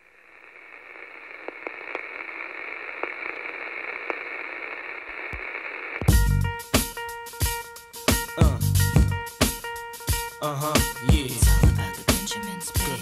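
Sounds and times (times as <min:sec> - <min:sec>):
faint crackles: 0:00.0 - 0:06.1
radio static hiss: 0:00.0 - 0:06.2.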